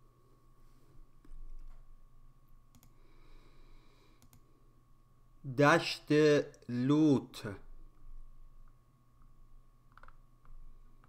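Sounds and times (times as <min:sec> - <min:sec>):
faint steady hum: 0:00.0 - 0:11.0
computer mouse clicks: 0:02.7 - 0:03.0, 0:04.2 - 0:04.5, 0:09.9 - 0:11.0
man speaking loudly: 0:05.5 - 0:07.6.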